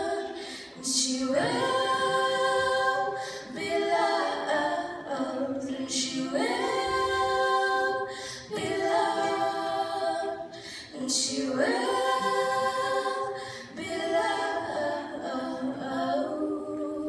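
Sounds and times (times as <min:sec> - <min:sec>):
women singing pop melody: 0:00.0 - 0:17.0.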